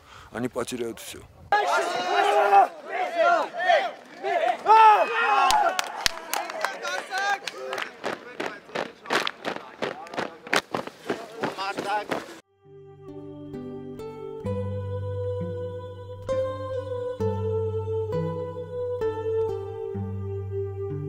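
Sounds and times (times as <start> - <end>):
soldiers shouting together: 1.5 - 9.1
boots running in step: 7.9 - 12.4
music: 12.5 - 21.0.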